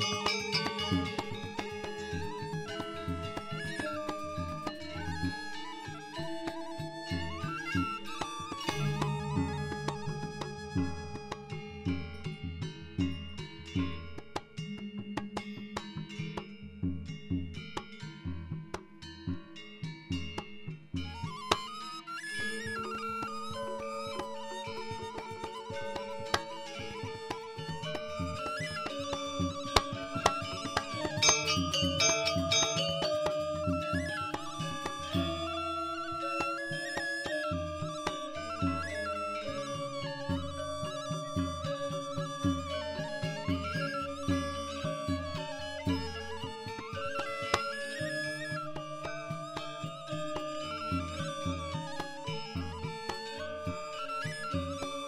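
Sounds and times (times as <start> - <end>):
gamelan ensemble playing: 0.0 - 21.7, 22.5 - 55.0
struck metal notes: 30.2 - 35.6.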